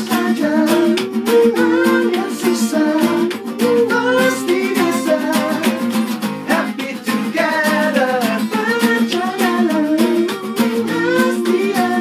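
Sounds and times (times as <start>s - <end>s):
acoustic guitars strumming: 0.0s - 12.0s
men singing: 0.0s - 12.0s.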